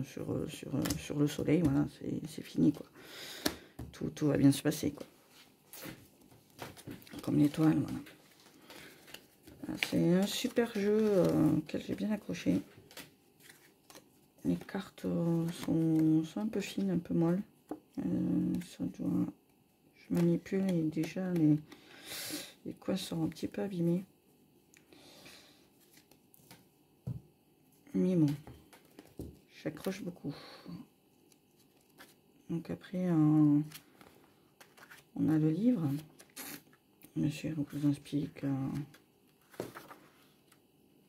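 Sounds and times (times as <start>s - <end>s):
cards rustling and ticking: 5.7s - 17.9s.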